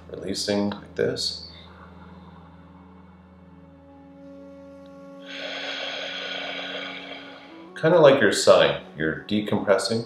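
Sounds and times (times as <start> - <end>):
soft ambient music: 0.0 - 10.0
person exhaling through mouth: 5.2 - 7.7.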